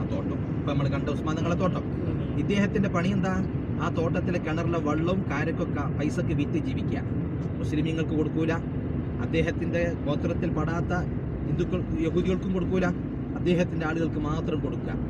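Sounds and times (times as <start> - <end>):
people talking: 0.0 - 7.0, 7.6 - 8.6, 9.2 - 15.0
car engine hum: 0.0 - 15.0
road noise: 0.0 - 15.0.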